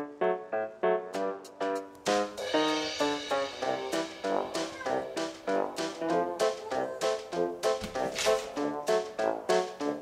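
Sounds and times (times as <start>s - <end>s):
keyboard music: 0.0s - 10.0s.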